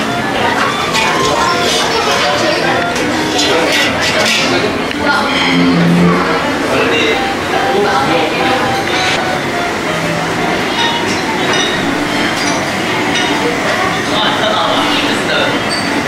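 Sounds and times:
indistinct chatter: 0:00.0 - 0:16.0
crockery and cutlery clinking: 0:00.4 - 0:07.2, 0:10.6 - 0:16.0.

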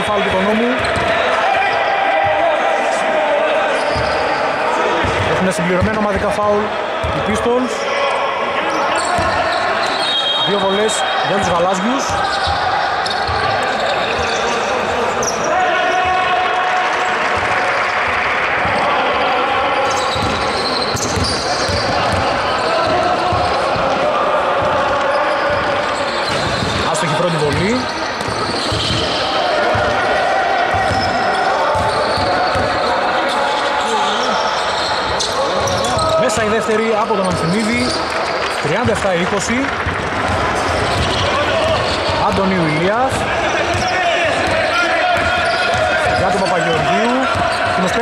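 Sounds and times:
indistinct voices: 0:00.0 - 0:48.0
basketball bouncing on wooden court: 0:05.0 - 0:06.3, 0:19.8 - 0:24.0, 0:24.6 - 0:26.9, 0:27.5 - 0:30.0, 0:37.3 - 0:46.5.

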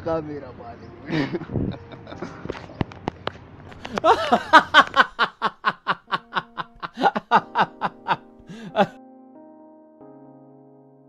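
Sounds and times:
music: 0:00.0 - 0:04.6, 0:06.0 - 0:11.0
person laughing: 0:03.9 - 0:09.0.

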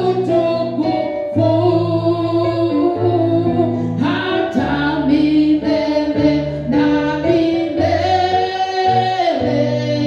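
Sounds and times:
sustained keyboard accompaniment: 0:00.0 - 0:10.0
woman singing into a microphone: 0:00.0 - 0:10.0.

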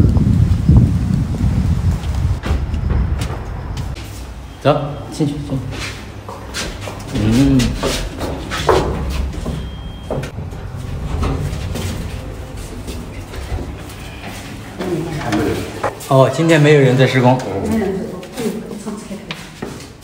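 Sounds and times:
elevator car rumbling: 0:00.0 - 0:18.1.

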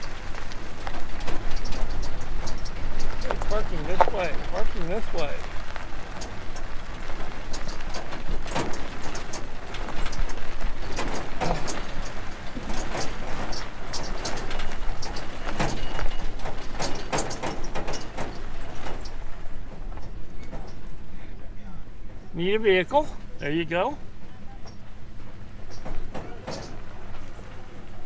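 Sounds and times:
tyres rolling over gravel: 0:00.0 - 0:28.0.

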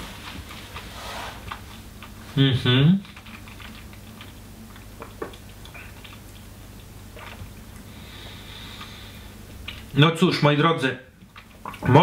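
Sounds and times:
low steady hum: 0:00.0 - 0:12.0
wet mouth clicks and smacks: 0:03.0 - 0:07.9.

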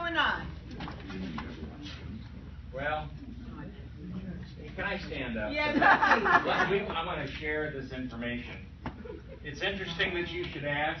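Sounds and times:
murmur of seated audience: 0:00.0 - 0:11.0.

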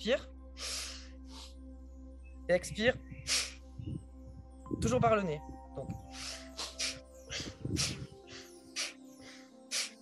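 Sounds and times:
soft background music: 0:00.0 - 0:10.0
forceful breathing through nose: 0:00.6 - 0:01.6, 0:03.2 - 0:03.8, 0:06.0 - 0:10.0.

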